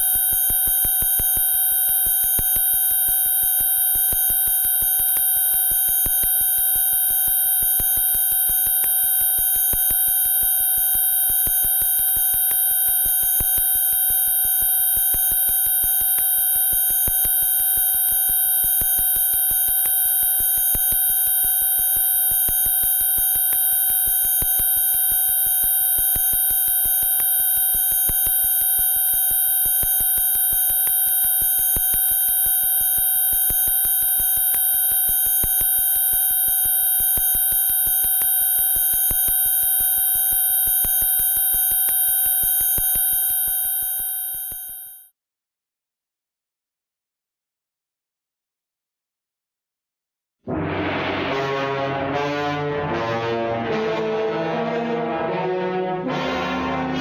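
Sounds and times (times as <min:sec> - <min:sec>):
electronic alarm tone: 0:42.2 - 0:45.1.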